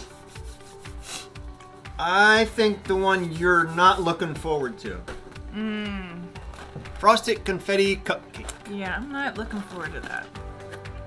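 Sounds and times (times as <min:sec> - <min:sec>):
hands rubbing together: 0:00.0 - 0:01.8
faint background music: 0:00.0 - 0:11.0.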